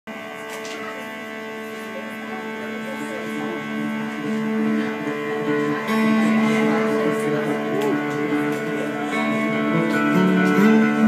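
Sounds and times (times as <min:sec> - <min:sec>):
guitars playing slow chords: 0:00.1 - 0:11.0
hum: 0:00.1 - 0:11.0.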